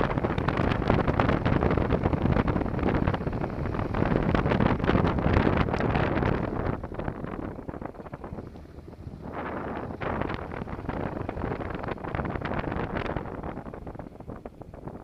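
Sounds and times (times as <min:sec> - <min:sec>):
wind rushing over microphone: 0:00.0 - 0:15.0.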